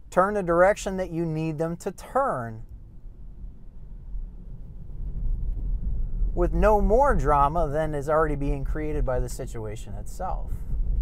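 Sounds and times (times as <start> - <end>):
road and tyre rumble: 2.0 - 11.0.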